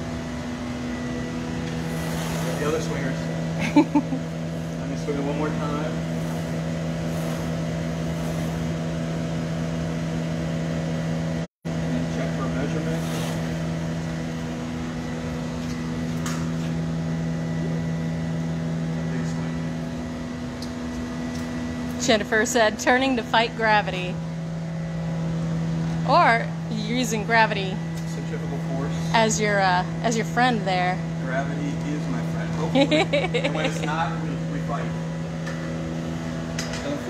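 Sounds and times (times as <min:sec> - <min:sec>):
loud machine drone: 0:00.0 - 0:37.0.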